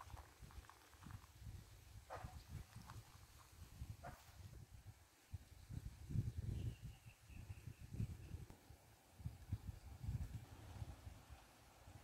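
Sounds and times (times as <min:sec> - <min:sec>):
wind rumble on microphone: 0:00.0 - 0:12.0
faint high chirping: 0:06.2 - 0:08.5.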